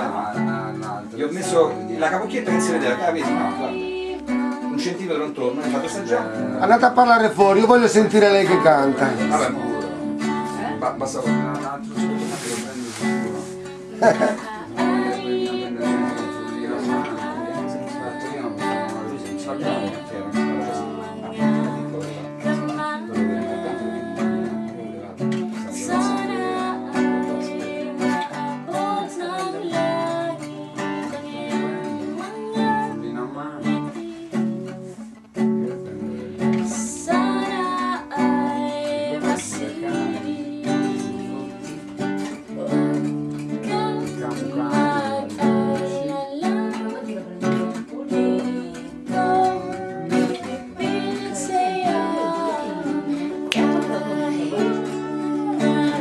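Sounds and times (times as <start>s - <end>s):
woman singing: 0.0s - 12.4s, 13.1s - 35.2s, 35.9s - 56.0s
strummed acoustic guitar: 0.0s - 56.0s.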